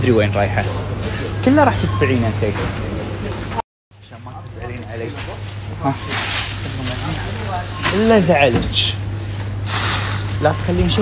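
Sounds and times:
plastic bag rustling: 4.8 - 8.9.

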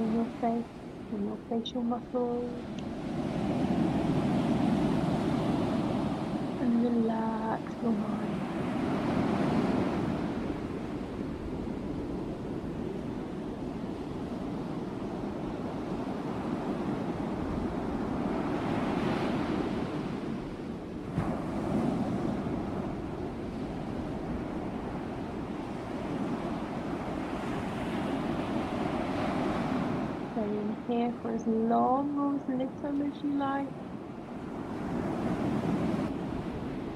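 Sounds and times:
small waves breaking on shore: 2.1 - 31.0, 32.2 - 36.9.

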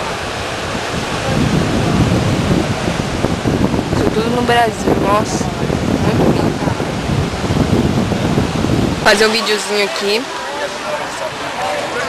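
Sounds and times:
surf breaking on rocks: 0.0 - 12.0
wind buffeting microphone: 0.0 - 12.0.

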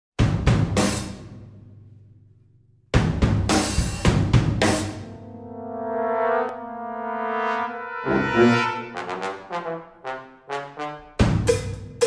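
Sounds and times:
drum-kit and cymbal hits: 3.0 - 8.4
brass band held chord: 4.6 - 11.4.

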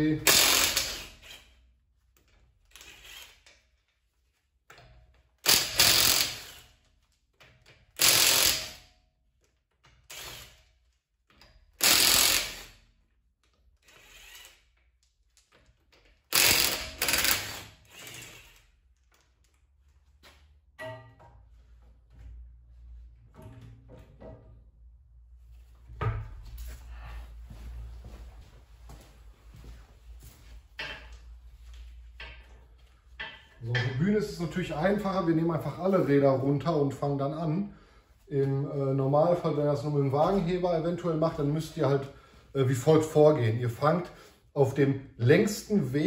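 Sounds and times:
cordless impact wrench bursts: 0.2 - 1.5, 2.7 - 3.5, 5.4 - 6.8, 8.0 - 8.9, 10.0 - 10.7, 11.8 - 12.9, 13.8 - 14.8, 16.3 - 18.7.

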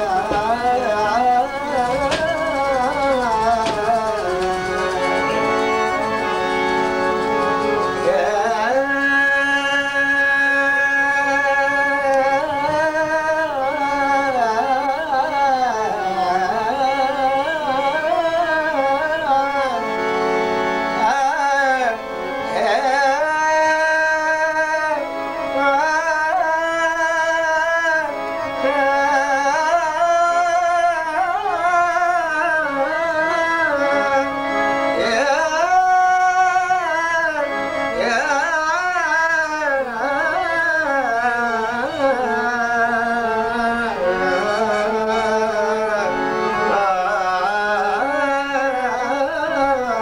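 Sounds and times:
man singing slowly: 0.0 - 5.4, 8.0 - 20.0, 21.0 - 50.0
instrumental accompaniment: 0.0 - 50.0.

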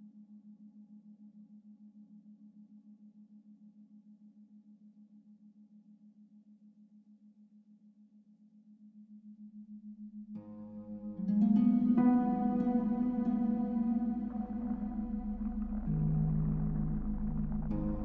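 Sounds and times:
low wavering drone: 10.5 - 18.0.

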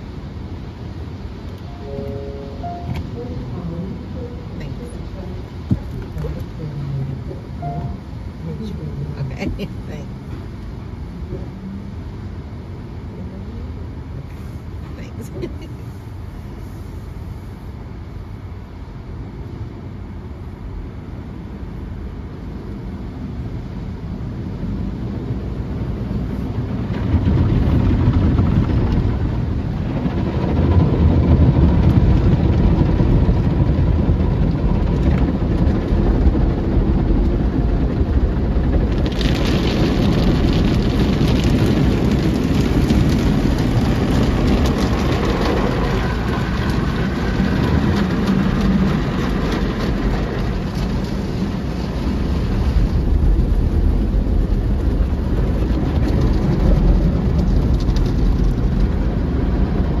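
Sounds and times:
car wash rumble of water and machinery: 0.0 - 60.0.

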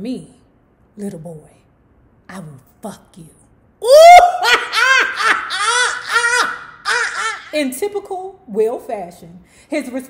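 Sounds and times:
woman laughing loudly: 3.8 - 7.6.

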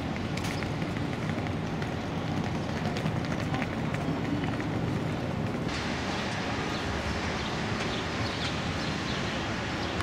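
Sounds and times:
hissy outdoor ambience: 0.0 - 10.0
traffic and street noise: 0.0 - 10.0.

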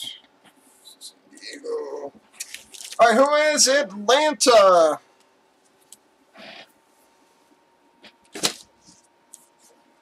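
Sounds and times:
packaging rustling: 2.4 - 3.0.

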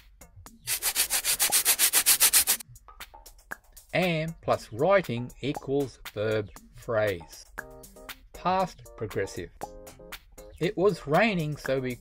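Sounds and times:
pencil scribbling on paper: 0.7 - 2.6.

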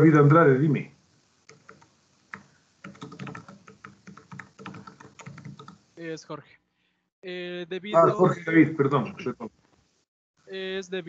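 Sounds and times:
computer keyboard typing: 1.5 - 5.8.

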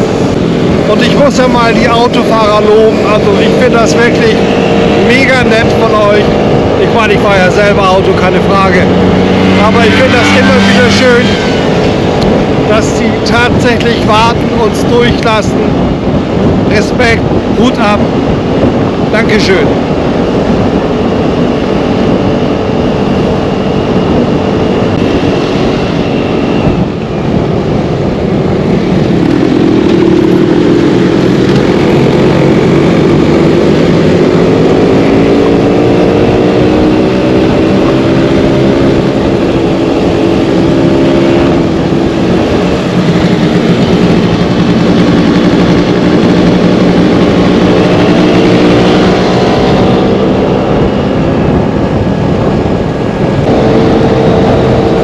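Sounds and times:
scooter engine running: 20.0 - 55.0.

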